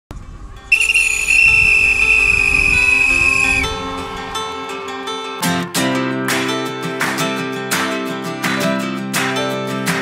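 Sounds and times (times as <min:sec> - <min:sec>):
soft music: 0:00.2 - 0:10.0
whistle blast: 0:00.7 - 0:04.2.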